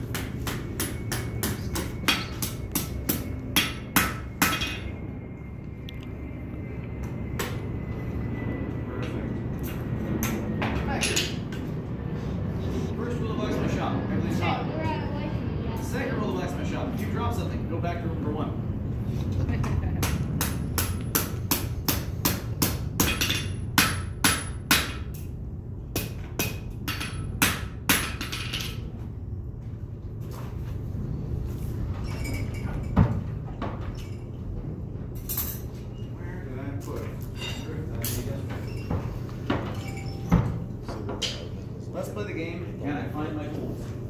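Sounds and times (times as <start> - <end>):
hammer ringing on anvil: 0.1 - 5.0.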